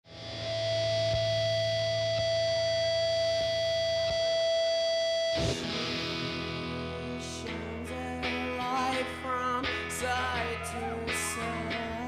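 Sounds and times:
electric guitar high note: 0.1 - 12.0.

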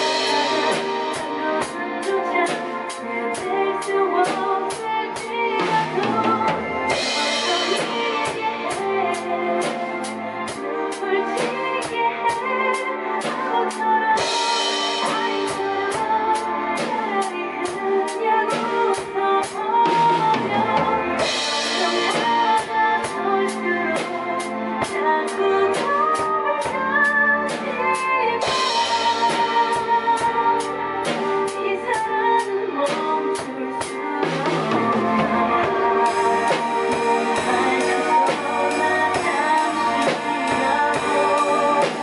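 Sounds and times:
drum kit playing steady beat: 0.0 - 42.0
recorded ballad music: 0.0 - 42.0.

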